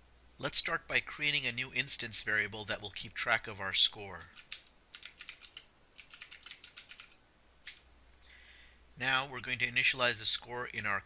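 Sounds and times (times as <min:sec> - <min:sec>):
computer keyboard typing: 0:04.1 - 0:07.8.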